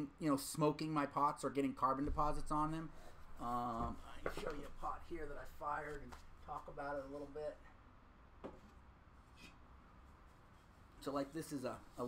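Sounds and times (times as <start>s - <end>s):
faint knock: 8.4s - 8.7s.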